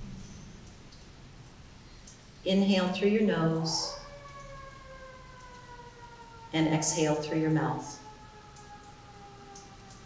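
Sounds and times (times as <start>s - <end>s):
faint siren falling in pitch: 2.9s - 10.0s.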